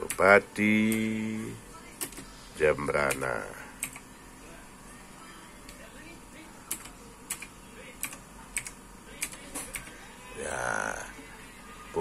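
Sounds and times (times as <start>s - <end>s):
computer keyboard typing: 3.0s - 4.0s, 6.7s - 10.0s.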